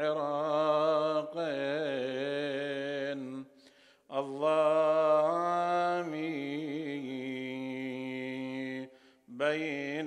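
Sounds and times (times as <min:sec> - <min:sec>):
man chanting: 0:00.0 - 0:10.0.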